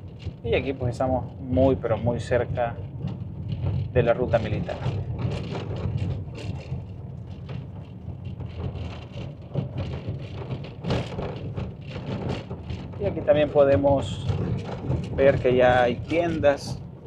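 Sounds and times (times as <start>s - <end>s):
car engine and road rumble: 0.0s - 17.0s.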